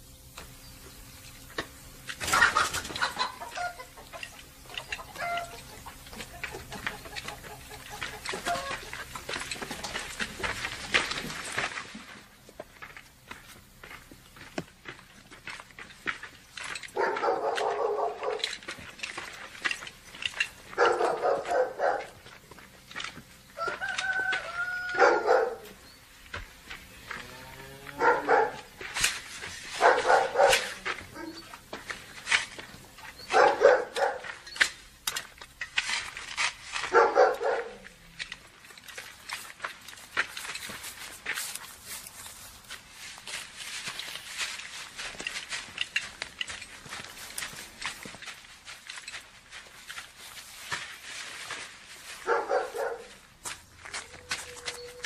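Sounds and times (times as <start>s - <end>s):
animal calls: 2.2s - 10.2s, 17.0s - 18.5s, 23.6s - 26.0s, 29.8s - 31.6s, 53.9s - 55.0s.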